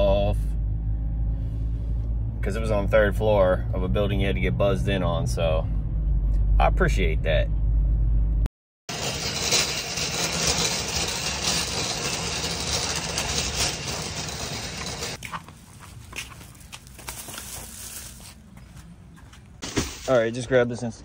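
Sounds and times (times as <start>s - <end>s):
shopping cart rolling over asphalt: 8.9s - 16.1s.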